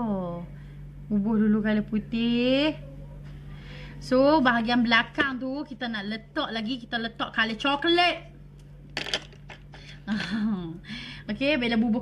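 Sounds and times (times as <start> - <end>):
woman speaking: 0.0 - 0.5, 1.1 - 3.0, 4.0 - 8.3, 10.1 - 12.0
steady low hum: 0.0 - 12.0.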